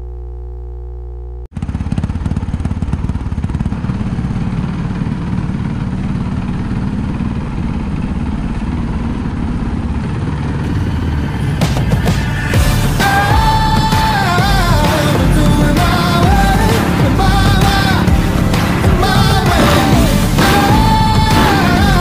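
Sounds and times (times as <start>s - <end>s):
steady electronic tone: 0.0s - 1.5s, 16.3s - 22.0s
motorcycle engine running: 0.0s - 22.0s.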